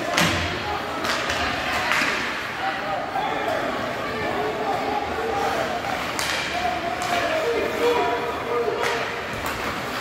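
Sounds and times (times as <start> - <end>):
hockey sticks and puck knocking: 0.0 - 2.3, 6.0 - 7.3.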